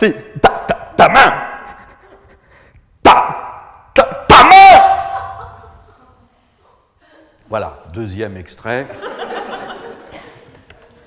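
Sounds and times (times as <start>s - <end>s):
man shouting wordless cries: 0.0s - 1.7s, 3.0s - 5.3s.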